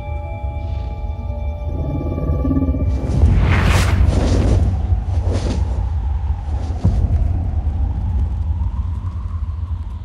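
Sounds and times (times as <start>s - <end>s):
deep low rumble: 1.2s - 10.0s.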